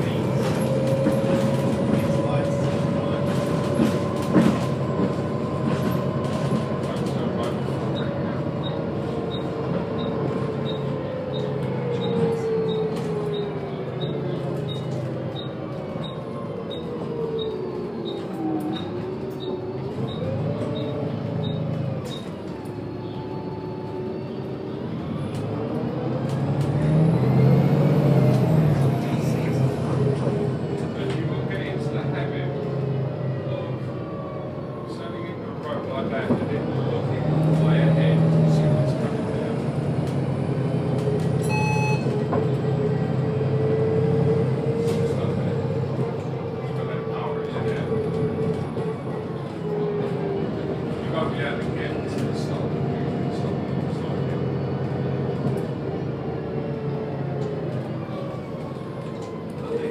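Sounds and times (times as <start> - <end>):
bus diesel engine: 0.0 - 59.9.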